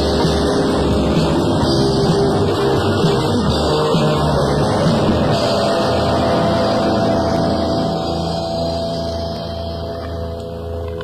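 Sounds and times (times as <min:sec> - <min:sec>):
electric guitar and bass ringing: 0:00.0 - 0:11.0.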